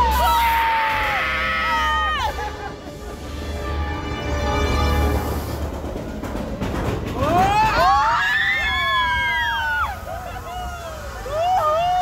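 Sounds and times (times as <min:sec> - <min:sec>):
rushing noise: 0:00.0 - 0:12.0
ride music: 0:01.1 - 0:08.0.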